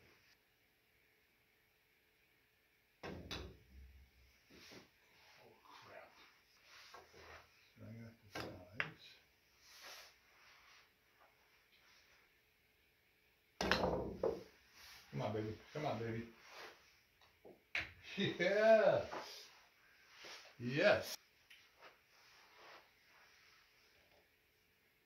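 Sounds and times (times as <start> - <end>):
pool cue striking ball: 3.0 - 3.9, 13.6 - 14.5.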